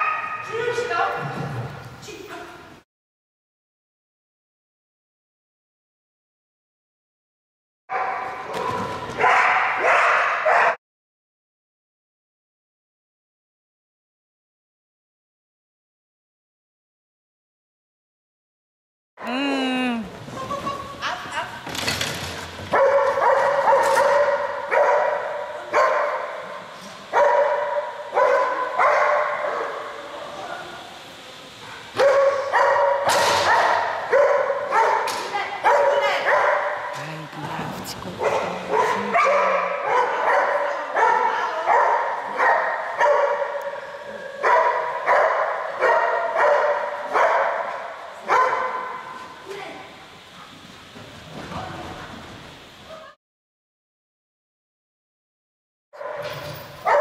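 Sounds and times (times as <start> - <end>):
dog barking with echo: 7.9 - 10.8, 22.7 - 26.5, 27.1 - 29.9, 32.0 - 37.0, 38.2 - 49.1, 56.0 - 56.2.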